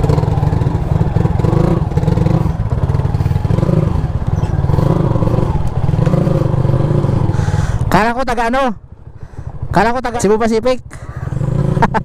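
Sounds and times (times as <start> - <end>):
motorcycle engine at low revs: 0.0 - 12.0.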